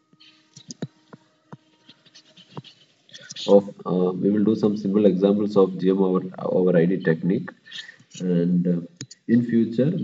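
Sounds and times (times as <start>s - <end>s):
stylus scratching on pen tablet: 1.8s - 3.5s.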